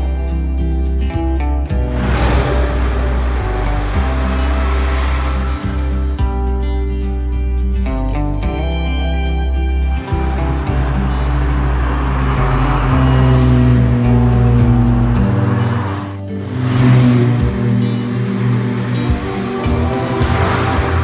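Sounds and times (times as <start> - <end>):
background music: 0.0 - 21.0
cars driving past: 1.7 - 7.4, 10.0 - 21.0.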